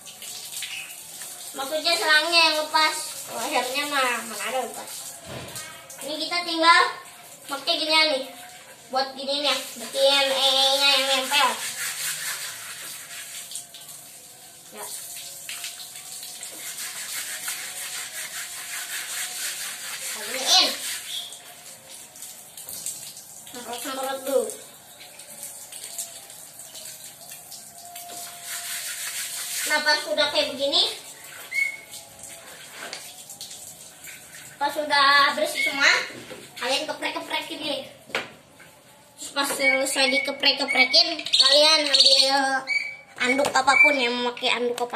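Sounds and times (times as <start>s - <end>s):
water pouring from a hose: 0.0s - 35.9s.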